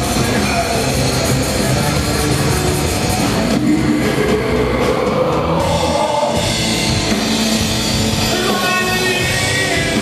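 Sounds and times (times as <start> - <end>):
live hardcore band playing loud: 0.0 - 10.0.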